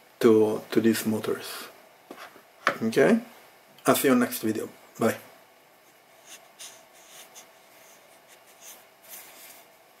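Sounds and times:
faint scratchy rustles: 0:05.8 - 0:09.8.

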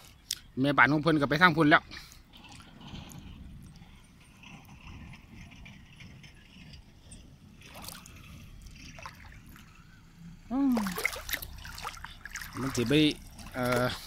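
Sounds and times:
water sloshing and trickling: 0:00.0 - 0:14.0.

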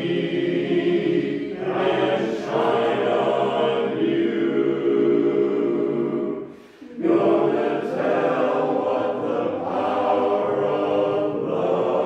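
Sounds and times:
men's chorus singing a cappella: 0:00.0 - 0:12.0.

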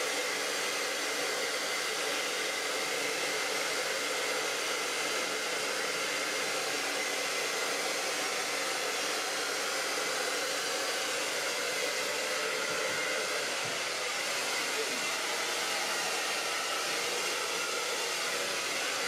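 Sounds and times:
hair dryer blowing air: 0:00.0 - 0:19.0.

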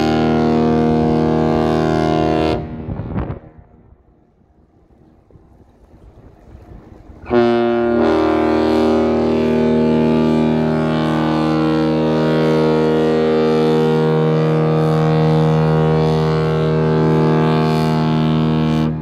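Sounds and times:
ship air horn blast: 0:00.0 - 0:04.2, 0:07.2 - 0:19.0.

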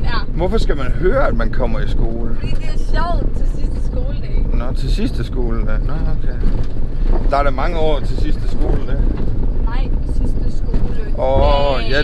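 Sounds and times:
road and engine rumble in vehicle: 0:00.0 - 0:12.0.

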